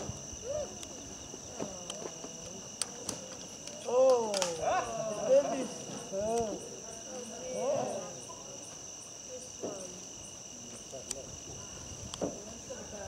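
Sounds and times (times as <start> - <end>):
crickets trilling: 0.0 - 13.0.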